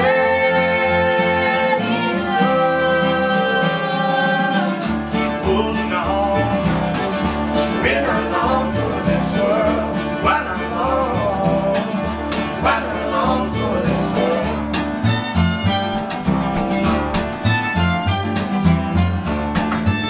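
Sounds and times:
person singing: 0:00.0 - 0:07.1, 0:07.7 - 0:16.7
fiddle: 0:00.0 - 0:20.0
strummed acoustic guitars: 0:00.0 - 0:20.0
upright bass: 0:00.0 - 0:20.0.

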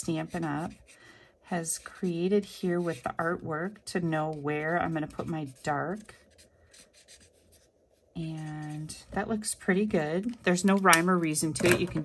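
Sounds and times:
marker strokes on cardstock: 0:00.0 - 0:09.3.

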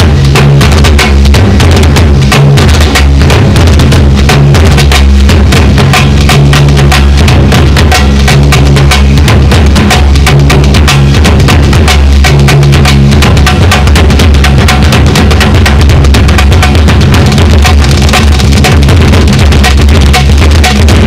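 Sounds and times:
fast drum strokes: 0:00.0 - 0:21.0.

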